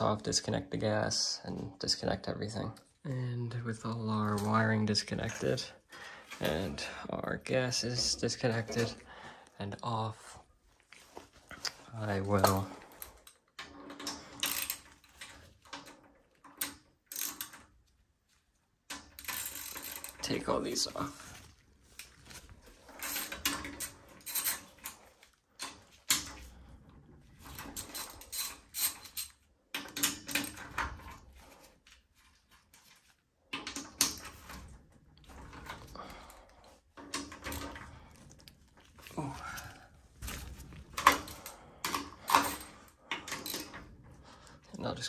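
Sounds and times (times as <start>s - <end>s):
hand ratchet clicking: 12.4s - 17.7s, 18.9s - 20.3s, 27.5s - 30.8s.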